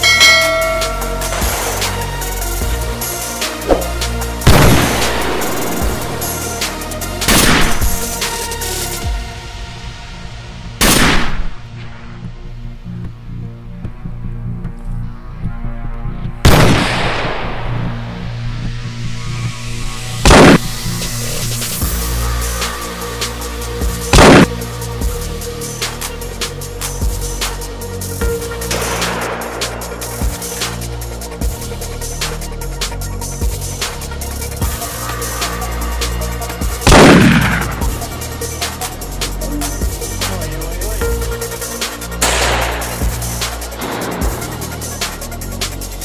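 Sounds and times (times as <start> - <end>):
background music with steady beat: 0.0 - 46.0
loud gunshot: 3.7 - 5.9, 7.3 - 8.0, 10.8 - 11.6, 16.5 - 17.9, 20.3 - 20.6, 24.1 - 24.5, 36.9 - 37.8, 42.2 - 44.8.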